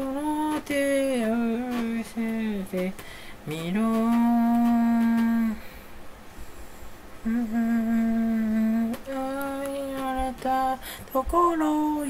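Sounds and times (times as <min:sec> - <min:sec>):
man singing unaccompanied: 0:00.0 - 0:05.7, 0:07.2 - 0:12.0.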